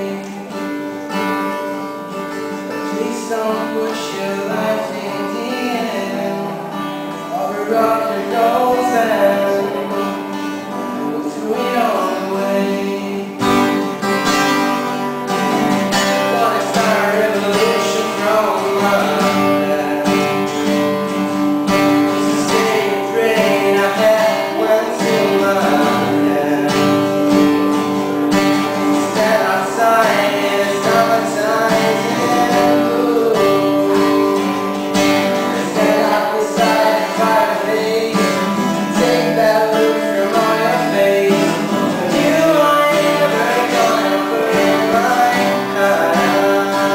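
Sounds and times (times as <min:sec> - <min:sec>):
acoustic guitar: 0:00.0 - 0:46.9
man singing: 0:00.0 - 0:46.9.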